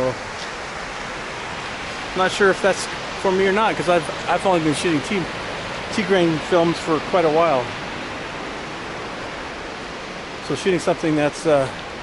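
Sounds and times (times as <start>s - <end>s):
forest stream rushing: 0.0s - 12.0s.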